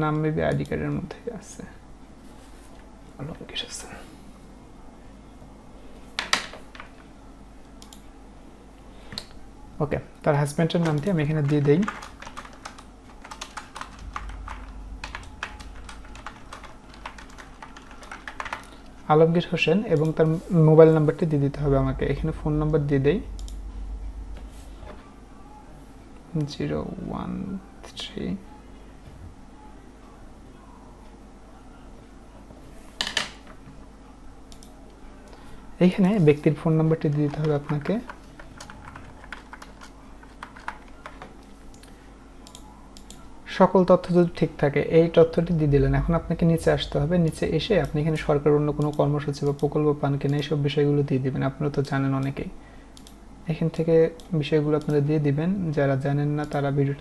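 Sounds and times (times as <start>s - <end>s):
steady low hum: 0.0s - 57.0s
keyboard typing clicks: 7.7s - 8.1s, 10.8s - 18.9s, 23.3s - 23.6s, 34.5s - 34.8s, 37.1s - 43.2s, 53.0s - 55.0s.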